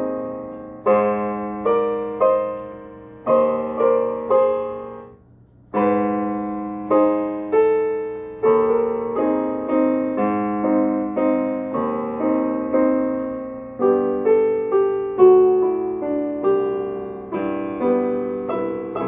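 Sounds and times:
digital piano chords: 0.0s - 19.0s.

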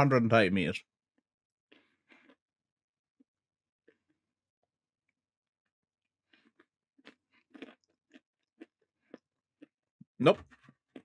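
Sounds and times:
person speaking a word: 0.0s - 0.8s, 10.2s - 10.4s
person chewing crunchy nuts: 1.7s - 2.5s, 6.2s - 9.8s, 10.6s - 11.0s.

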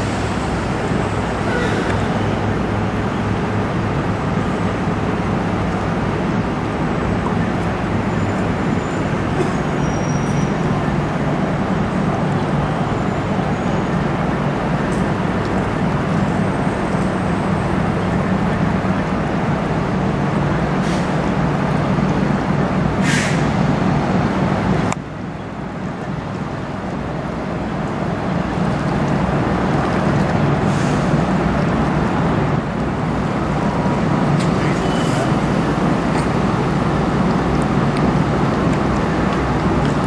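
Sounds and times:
ship engines low rumble: 0.0s - 40.0s.

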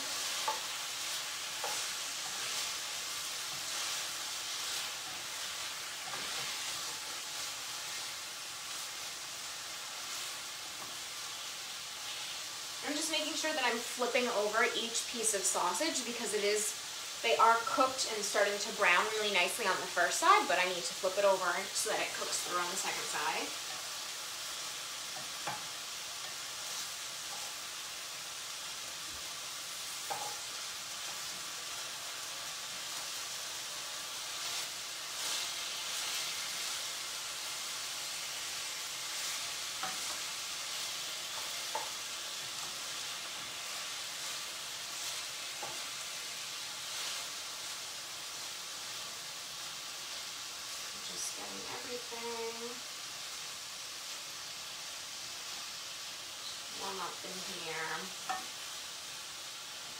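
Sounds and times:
food sizzling in a frying pan: 0.0s - 59.9s.

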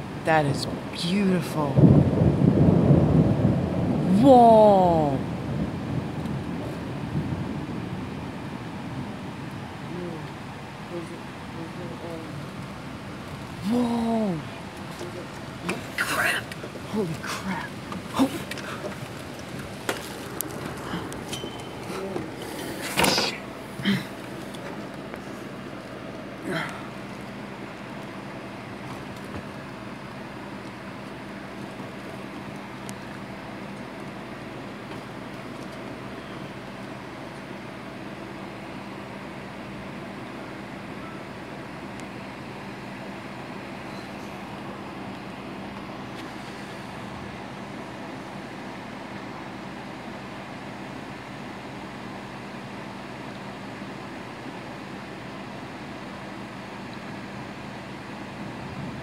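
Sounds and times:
heavy rain falling: 0.0s - 38.7s
low steady hum: 0.0s - 59.0s.

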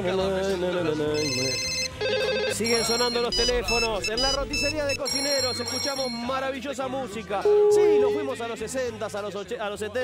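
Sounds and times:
telephone electronic trill ringing: 1.2s - 6.4s
man singing long notes: 7.4s - 8.6s.

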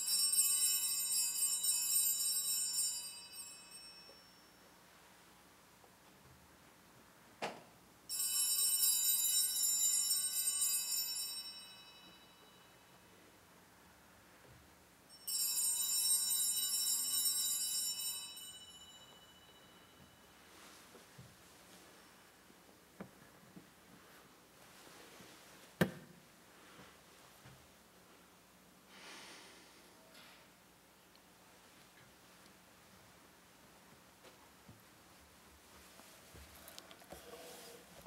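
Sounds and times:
altar bells jingling: 0.0s - 4.9s, 8.1s - 13.0s, 15.1s - 20.8s.

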